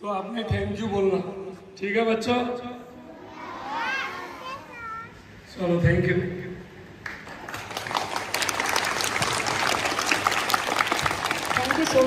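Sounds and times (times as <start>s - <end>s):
children calling out together: 3.0s - 5.3s.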